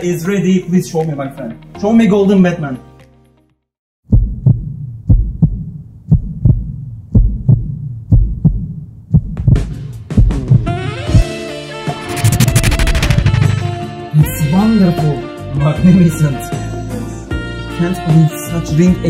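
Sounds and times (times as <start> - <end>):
music: 0.0 - 3.7, 9.4 - 19.0
heartbeat thumps: 4.1 - 10.7, 12.0 - 13.8.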